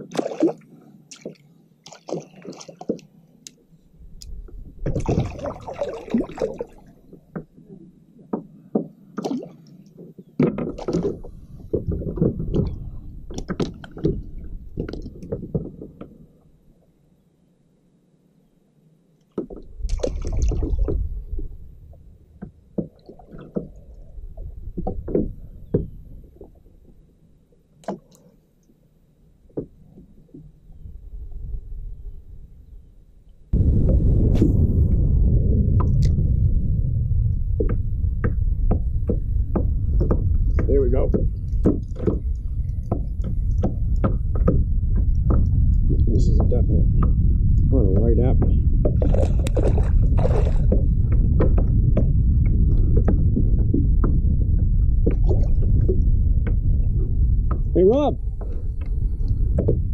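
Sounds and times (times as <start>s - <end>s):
wind buffeting microphone: 4.0s - 7.9s, 10.3s - 16.1s, 19.6s - 27.0s, 30.7s - 59.9s.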